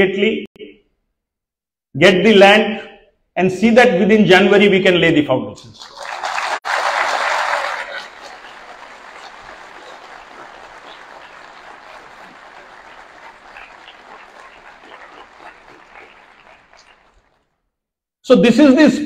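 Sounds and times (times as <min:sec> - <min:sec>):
audience applauding: 0:05.8 - 0:17.5.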